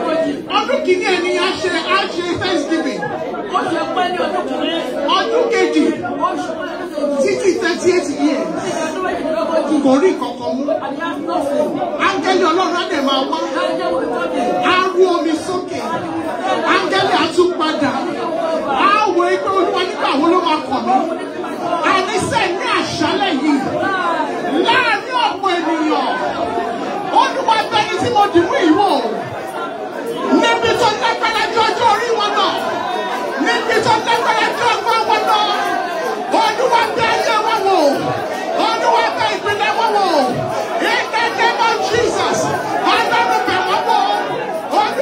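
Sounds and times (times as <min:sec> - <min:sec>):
congregation praying aloud: 0:00.0 - 0:45.0.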